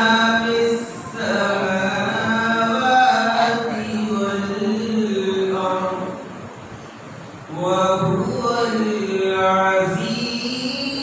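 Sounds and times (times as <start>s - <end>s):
man reciting melodically: 0.0s - 6.3s, 7.5s - 11.0s.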